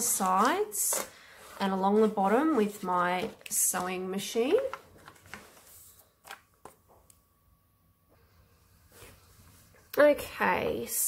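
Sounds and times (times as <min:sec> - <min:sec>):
paper rustling: 0:00.0 - 0:07.0.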